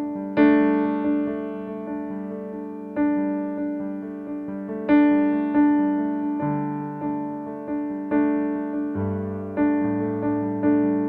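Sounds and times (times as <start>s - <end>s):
piano playing slow chords: 0.0s - 11.0s.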